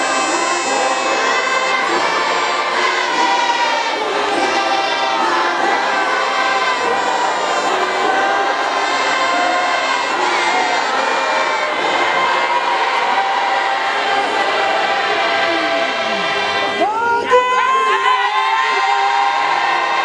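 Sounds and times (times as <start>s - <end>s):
congregation singing a hymn: 0.0s - 16.9s.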